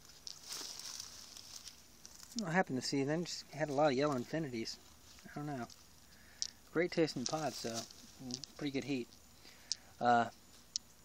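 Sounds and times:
leaves rustling softly: 0.0 - 11.0.

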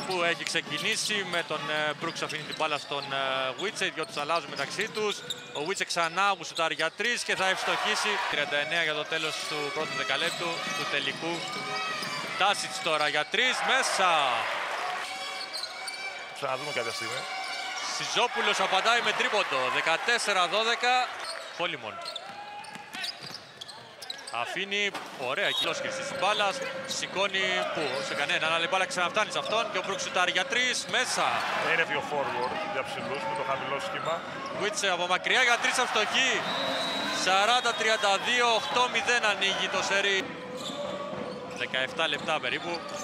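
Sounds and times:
crowd noise: 0.0 - 6.2, 7.0 - 43.0
ball bouncing on court: 22.2 - 23.8
indistinct arena voices: 25.2 - 43.0.

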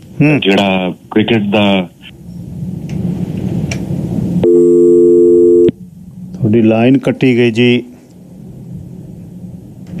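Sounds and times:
telephone busy tone: 4.4 - 5.7.

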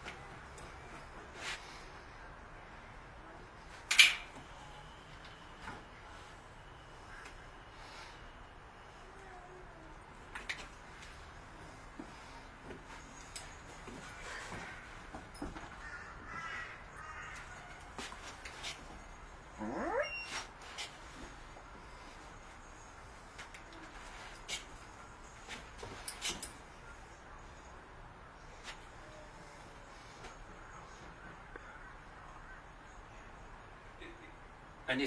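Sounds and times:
puppy whining and yelping: 19.6 - 20.5.

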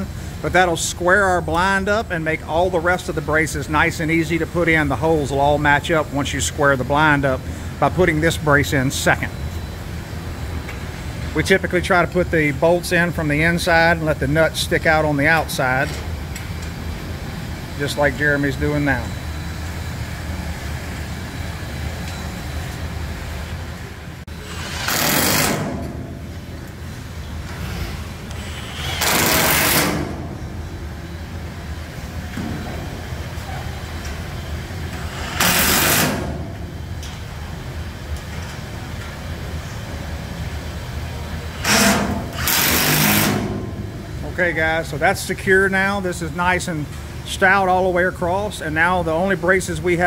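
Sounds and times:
steady low hum: 0.0 - 50.0
impact wrench bursts: 24.3 - 26.0, 28.3 - 30.3, 34.9 - 36.5, 41.5 - 43.8.

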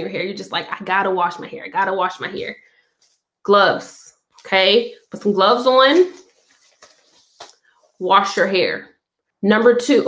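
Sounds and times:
fabric rustling: 5.6 - 8.0.

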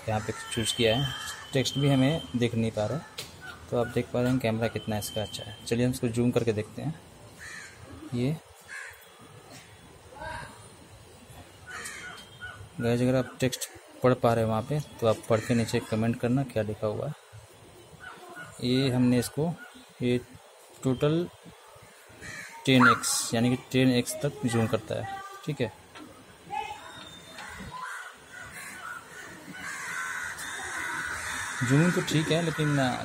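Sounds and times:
crow cawing: 0.1 - 1.5, 7.4 - 8.1, 8.7 - 9.2, 11.7 - 12.7, 21.9 - 23.0, 27.4 - 33.0.

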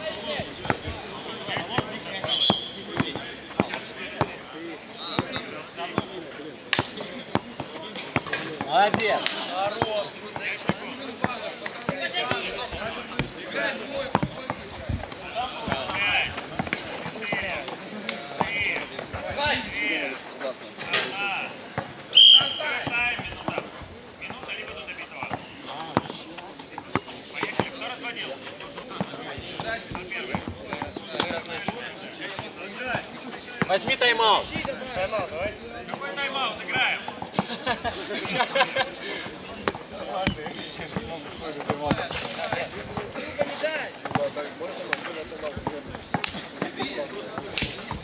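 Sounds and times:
players voices and shouts: 0.0 - 48.0
basketball bouncing on court: 0.6 - 4.4, 14.0 - 14.7, 15.6 - 17.5, 29.0 - 33.7, 39.6 - 43.1.

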